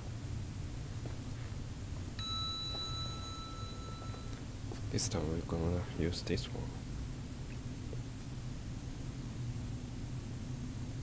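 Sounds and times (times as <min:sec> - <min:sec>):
steady low hum: 0:00.0 - 0:11.0
elevator arrival chime: 0:02.2 - 0:04.4.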